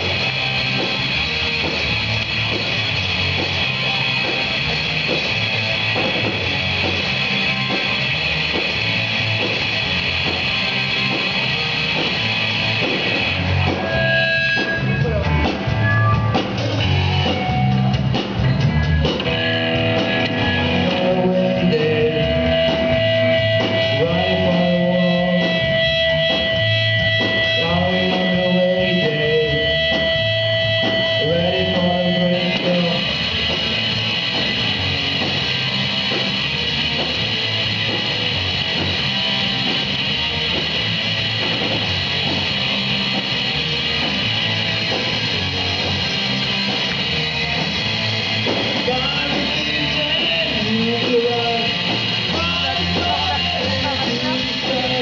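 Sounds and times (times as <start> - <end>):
bass guitar: 0.0 - 55.0
drum kit: 0.0 - 55.0
electric guitar: 0.0 - 55.0.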